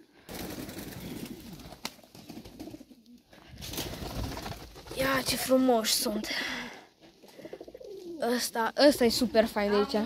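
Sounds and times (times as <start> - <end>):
pigeons cooing: 7.2 - 8.2.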